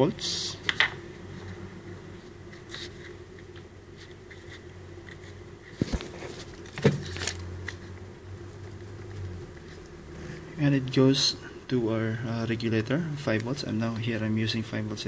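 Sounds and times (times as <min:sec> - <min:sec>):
low background hum: 0:00.0 - 0:15.0.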